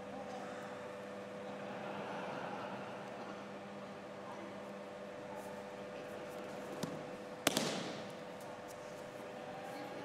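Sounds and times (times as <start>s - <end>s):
body slapping onto mats: 6.8s - 8.2s.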